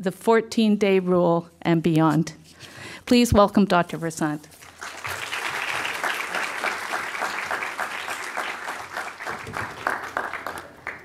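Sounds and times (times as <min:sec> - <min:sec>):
audience applauding: 0:04.6 - 0:11.0.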